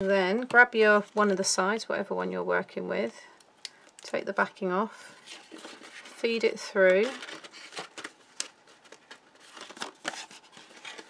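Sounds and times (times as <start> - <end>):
cardstock rustling and scraping: 5.2 - 11.0.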